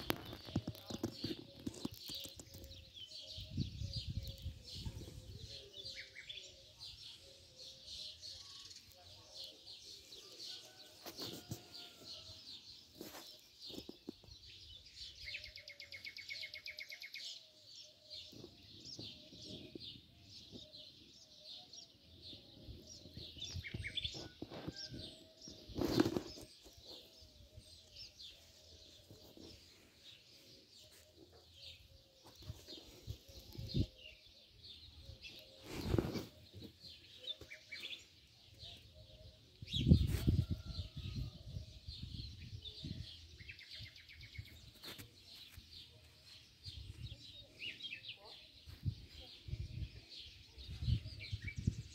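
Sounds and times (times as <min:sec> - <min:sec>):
small birds chirping: 0:00.0 - 0:51.9.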